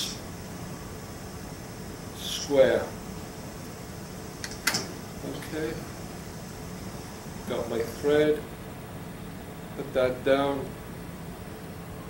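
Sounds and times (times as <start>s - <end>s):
steady room hum: 0.0s - 12.0s.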